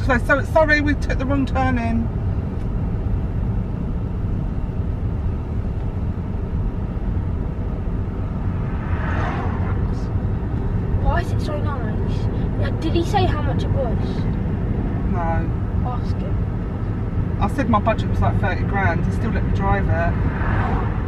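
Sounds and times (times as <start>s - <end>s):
road and tyre rumble in car cabin: 0.0s - 21.0s.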